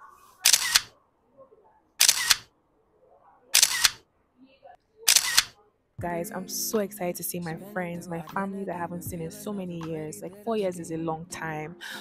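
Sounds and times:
camera shutter clicking: 0.4 - 0.9, 2.0 - 2.5, 3.6 - 4.0, 5.1 - 5.5.

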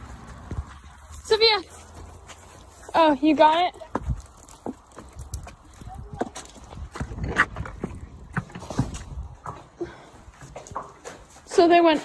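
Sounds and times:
footsteps: 0.0 - 12.0
hooves on concrete: 0.0 - 12.0.

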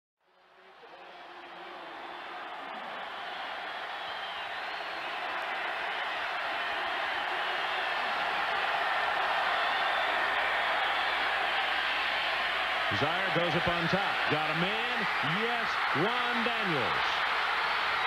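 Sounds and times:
stadium crowd cheering: 0.2 - 18.0.

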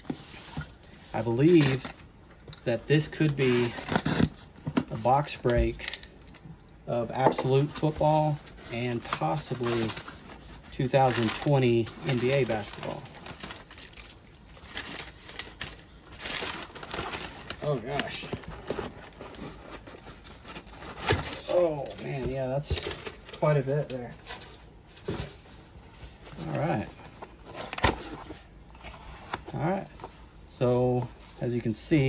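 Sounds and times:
cardboard box rustling: 7.4 - 30.2
packing paper crinkling: 7.5 - 24.6, 26.0 - 29.8.

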